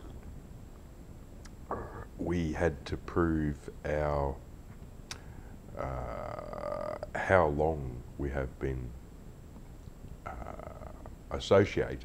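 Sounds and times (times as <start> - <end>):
low steady background rumble: 0.0 - 12.0
man saying uh: 1.7 - 4.4, 5.8 - 8.9, 10.3 - 12.0
man talking: 1.7 - 4.4, 5.7 - 9.0, 10.3 - 12.0.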